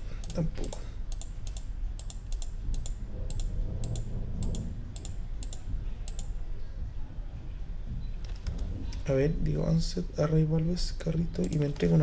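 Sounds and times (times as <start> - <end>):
computer mouse clicking: 0.0 - 6.4, 11.4 - 11.9
steady low hum: 0.0 - 12.0.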